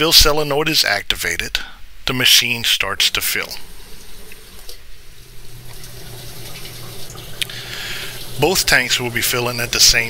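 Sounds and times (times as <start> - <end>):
low steady hum: 0.0 - 10.0
water rushing into tank: 3.6 - 10.0.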